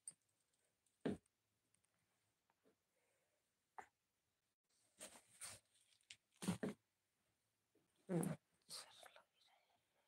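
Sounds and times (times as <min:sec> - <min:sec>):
woman whispering: 0:08.7 - 0:10.0.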